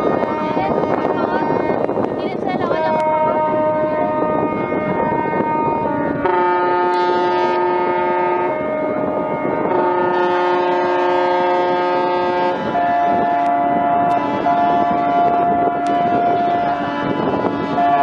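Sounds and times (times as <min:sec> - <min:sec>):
ship horns blasting: 0:00.0 - 0:18.0.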